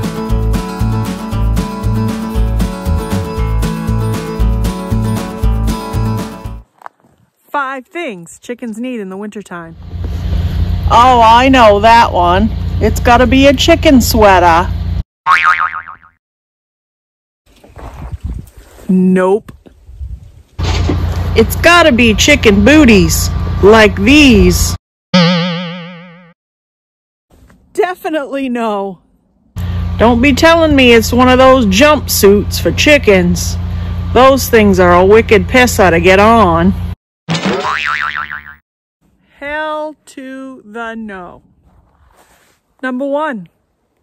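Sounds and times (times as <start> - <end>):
cartoon boing: 15.3 - 16.2, 25.1 - 26.3, 37.3 - 38.6.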